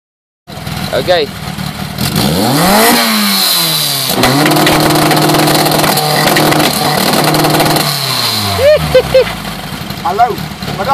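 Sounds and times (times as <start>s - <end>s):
engine revving: 0.8s - 10.9s.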